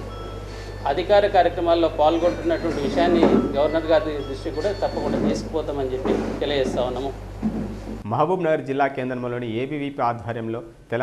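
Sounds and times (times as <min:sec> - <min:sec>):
low steady hum: 0:00.0 - 0:11.0
man speaking: 0:00.8 - 0:07.2, 0:08.0 - 0:11.0.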